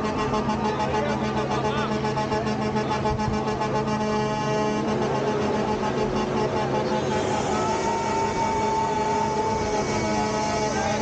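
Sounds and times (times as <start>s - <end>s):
truck engines running: 0.0s - 11.0s
truck horn tones: 0.0s - 11.0s.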